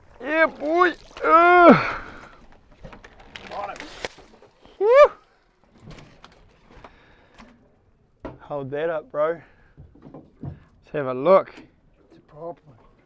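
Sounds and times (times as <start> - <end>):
man whooping excitedly: 1.2 - 2.0, 4.8 - 5.2.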